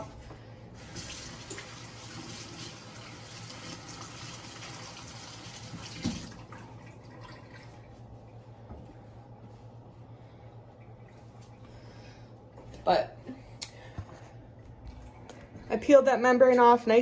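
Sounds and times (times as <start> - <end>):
tap water running over hands: 0.8 - 7.8.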